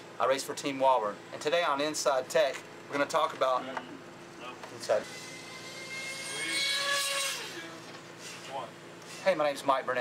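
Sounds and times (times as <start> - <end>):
passing engine whining: 4.9 - 8.5.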